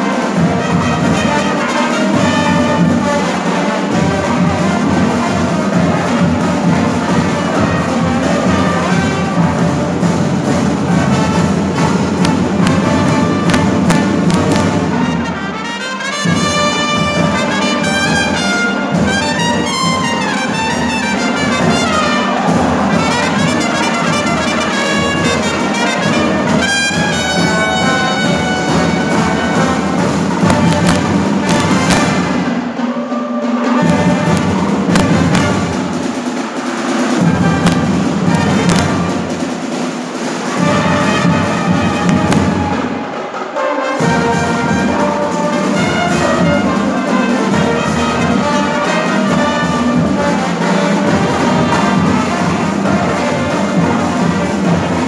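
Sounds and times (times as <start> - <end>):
trombones: 0.0 - 55.0
trumpets: 0.0 - 55.0.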